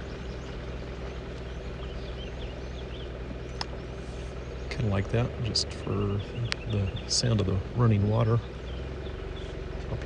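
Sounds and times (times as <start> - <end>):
faint bird chirps: 0.0 - 4.9, 8.2 - 10.0
vehicle engine running: 0.0 - 10.0.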